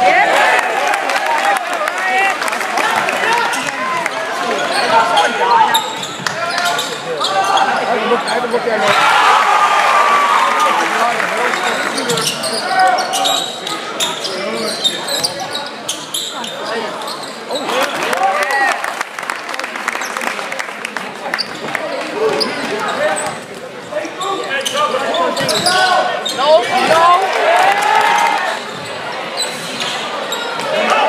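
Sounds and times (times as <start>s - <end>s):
voices of players and spectators: 0.0s - 31.0s
sneakers squeaking: 3.4s - 9.0s, 11.9s - 17.8s, 21.3s - 27.1s, 28.1s - 31.0s.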